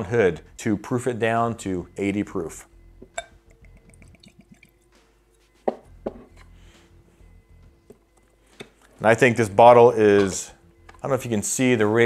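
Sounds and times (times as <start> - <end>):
liquid glugging and dripping: 3.1 - 4.8.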